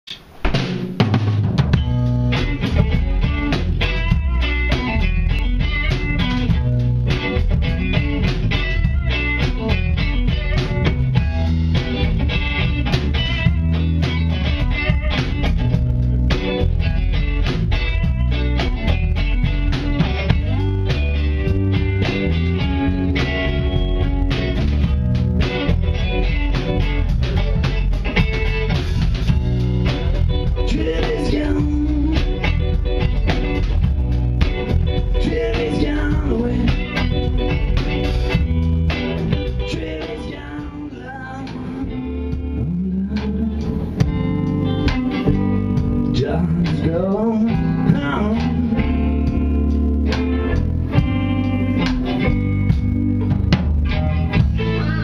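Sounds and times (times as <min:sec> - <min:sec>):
drum kit with rimshots: 0:00.0 - 0:55.0
electric guitars: 0:00.1 - 0:55.0.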